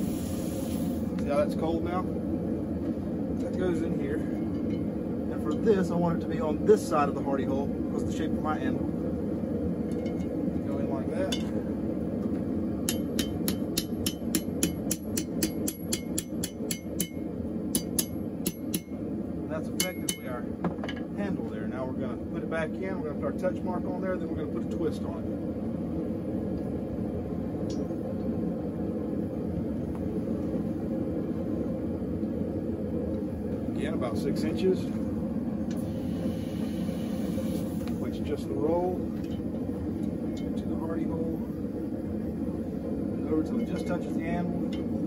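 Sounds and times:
hammer ringing on steel: 12.9 - 18.9, 19.8 - 20.4.

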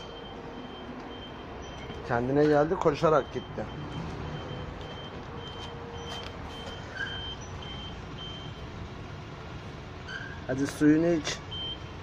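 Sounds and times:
reversing alarm beeping: 0.0 - 8.8, 11.5 - 12.0
low engine rumble: 0.0 - 12.0.

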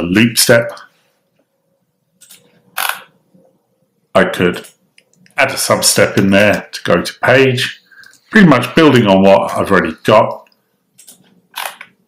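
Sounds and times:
computer mouse clicking: 11.0 - 12.0.

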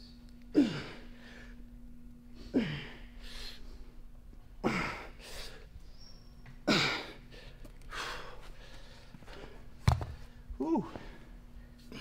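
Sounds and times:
kettlebell thud on floor: 9.8 - 10.2
man grunting: 10.6 - 11.0.

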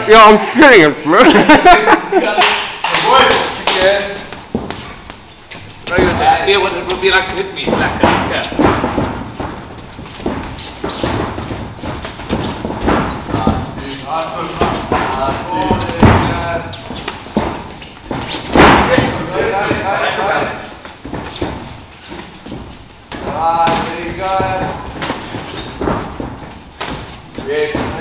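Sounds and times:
boxing gloves thudding: 3.8 - 28.0.

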